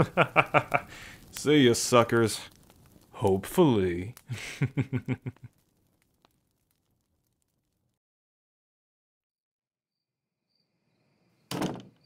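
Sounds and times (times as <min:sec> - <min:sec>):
man laughing: 0:00.0 - 0:00.9, 0:04.3 - 0:05.6.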